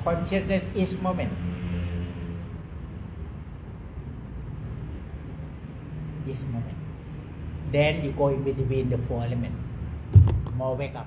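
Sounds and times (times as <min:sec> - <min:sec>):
room background rumble and hiss: 0:00.0 - 0:01.5, 0:02.4 - 0:11.0.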